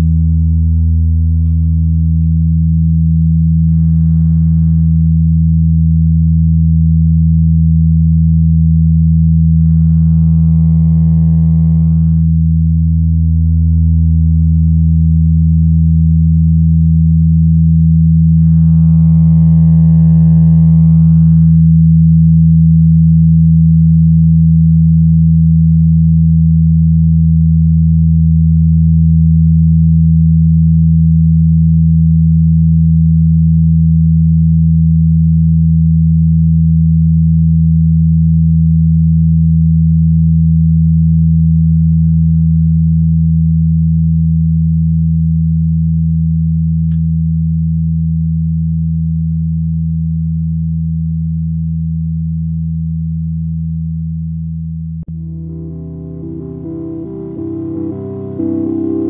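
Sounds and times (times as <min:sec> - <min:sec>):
electronic drone music: 0:55.1 - 0:59.0.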